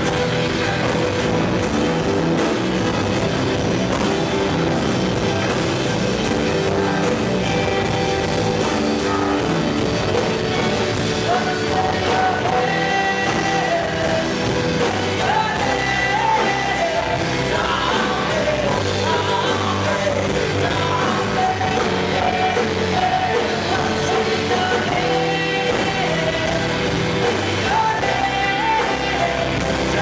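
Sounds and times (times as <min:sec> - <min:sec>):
acoustic and electric guitars: 0:00.0 - 0:30.0
steady drum beat: 0:00.0 - 0:30.0
person singing: 0:06.2 - 0:30.0.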